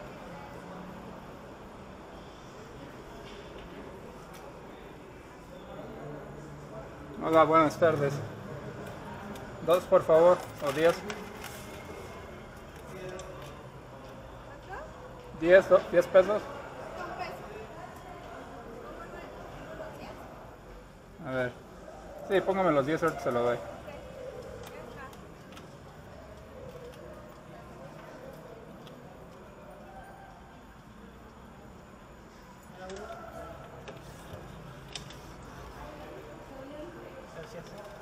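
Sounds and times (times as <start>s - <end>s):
faint voices: 0.0s - 38.0s.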